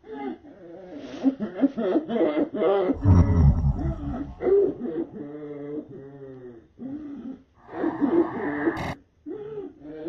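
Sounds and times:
deep distorted vocal roar: 0:03.0 - 0:04.6.

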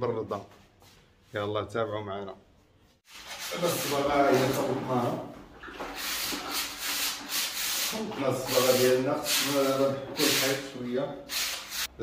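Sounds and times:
sanding strokes on wall: 0:03.0 - 0:05.0, 0:05.8 - 0:11.9.

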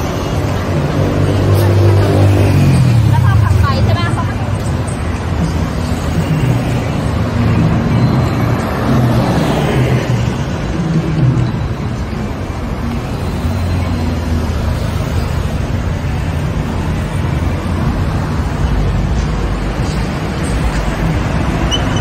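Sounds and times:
traffic engine hum: 0:00.0 - 0:22.0
voices of passers-by: 0:00.0 - 0:22.0.

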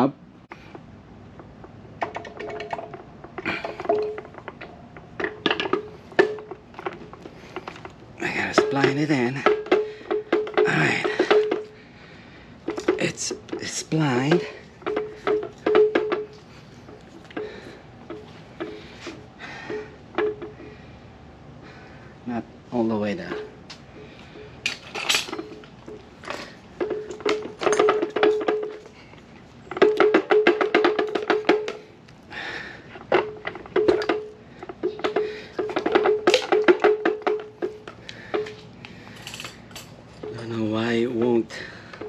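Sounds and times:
metal knocks clinks and scrapes: 0:01.4 - 0:11.8, 0:12.6 - 0:20.7, 0:24.3 - 0:31.9, 0:33.0 - 0:42.0.

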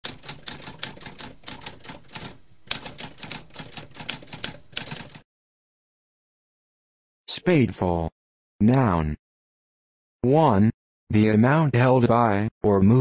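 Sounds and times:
typewriter keystrokes: 0:00.0 - 0:05.2.

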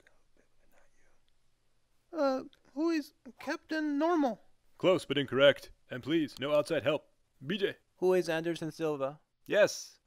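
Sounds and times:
man whispering: 0:00.0 - 0:01.3.

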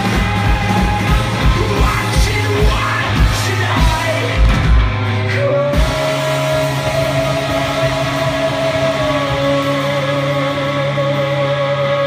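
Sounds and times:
electric guitars and bass chord ringing: 0:00.0 - 0:12.0.

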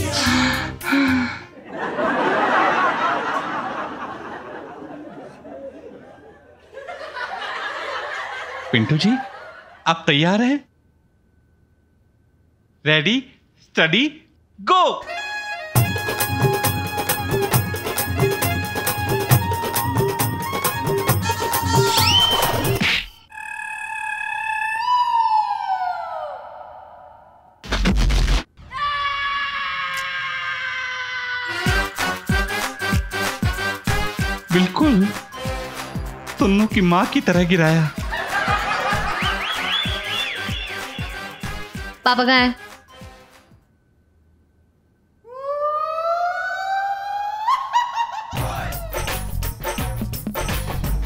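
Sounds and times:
falling whistle sound effect: 0:21.8 - 0:25.8, 0:39.2 - 0:41.7
rising siren-like comedy tone: 0:21.8 - 0:26.9, 0:39.2 - 0:41.7.

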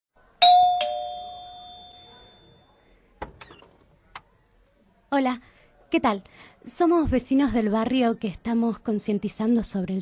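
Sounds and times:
two-tone doorbell chime: 0:00.4 - 0:02.8.

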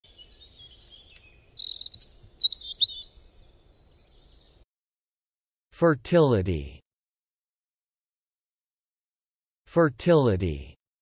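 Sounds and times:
songbirds chirping: 0:00.0 - 0:04.6.

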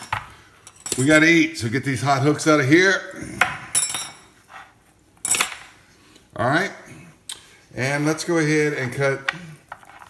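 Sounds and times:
metal hooks clinking: 0:00.0 - 0:01.4, 0:03.8 - 0:04.3, 0:05.2 - 0:05.7.

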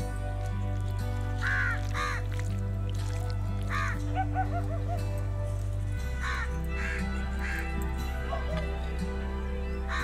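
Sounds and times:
background music: 0:00.0 - 0:10.0
crow cawing: 0:01.4 - 0:02.2, 0:03.7 - 0:04.6, 0:06.2 - 0:07.7.

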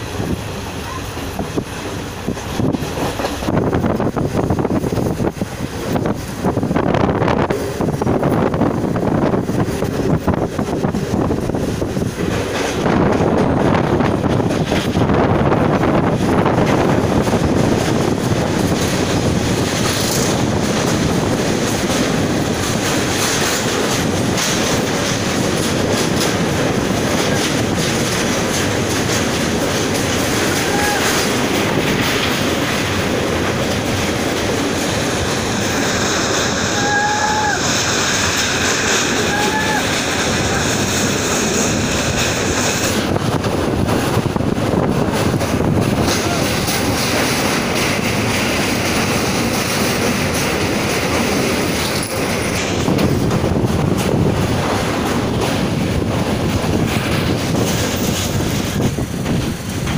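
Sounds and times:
train wheels rumbling on rails: 0:00.0 - 0:59.9
wind noise on microphone: 0:00.0 - 0:59.9.

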